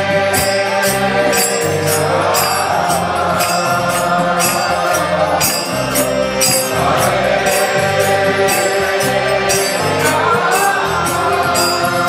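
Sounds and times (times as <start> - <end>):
harmonium chords: 0.0 - 12.0
jingling metal percussion: 0.0 - 12.0
voices chanting: 0.0 - 12.0.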